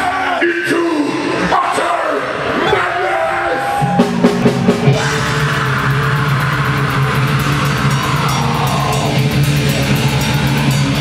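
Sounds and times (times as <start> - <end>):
distorted electric guitars: 3.5 - 11.0
fast drumming: 3.8 - 11.0.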